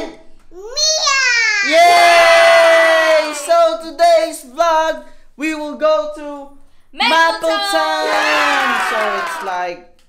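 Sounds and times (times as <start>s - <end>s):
child yelling: 0.6s - 2.0s, 7.0s - 9.5s
excited voices cheering: 1.6s - 3.6s, 7.0s - 9.8s.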